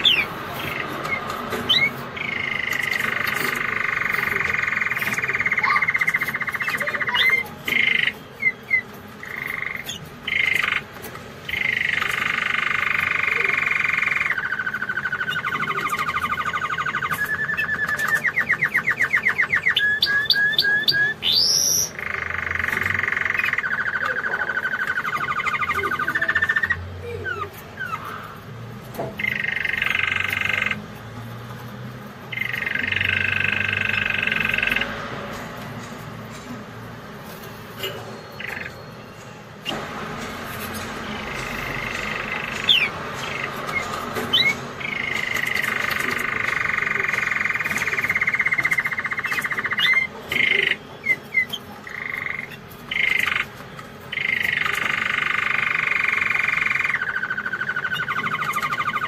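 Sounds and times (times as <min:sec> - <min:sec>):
canary singing trills: 0:00.0 - 0:59.0.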